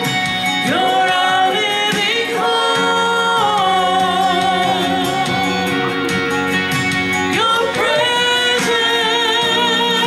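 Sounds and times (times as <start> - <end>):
instrumental accompaniment: 0.0 - 10.0
woman singing into a microphone: 0.2 - 6.2, 7.1 - 10.0.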